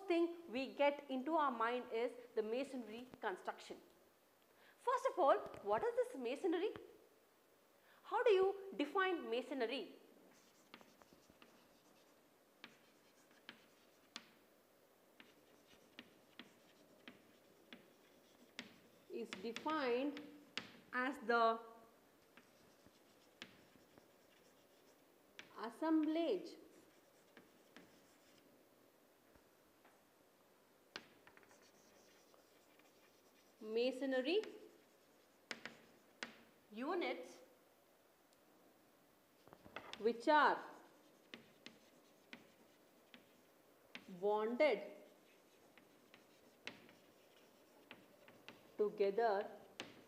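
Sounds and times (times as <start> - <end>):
chalk tapping on a chalkboard: 10.3 - 14.4, 15.2 - 20.9, 22.3 - 28.4, 30.9 - 33.6, 34.4 - 36.5, 39.4 - 40.1, 41.0 - 44.2, 45.0 - 48.8, 49.4 - 50.0.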